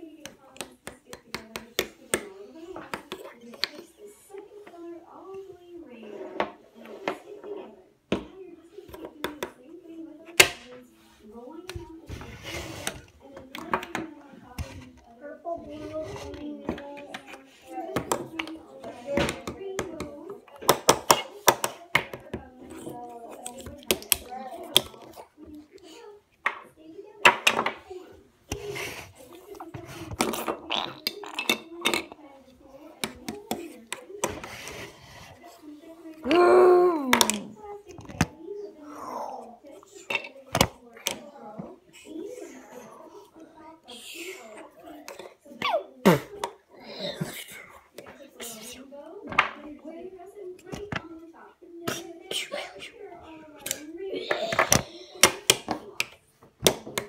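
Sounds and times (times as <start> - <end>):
child making play noises: 36.2 - 37.6, 45.5 - 46.2.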